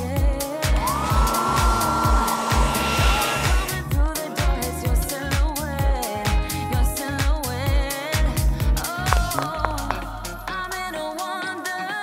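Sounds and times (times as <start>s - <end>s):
pop music with beat: 0.0s - 12.0s
hair dryer running: 0.6s - 3.9s.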